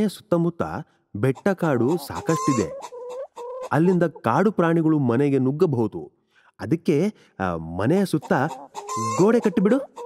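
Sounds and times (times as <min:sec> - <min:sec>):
chickens clucking: 0:01.2 - 0:04.4, 0:08.0 - 0:10.0.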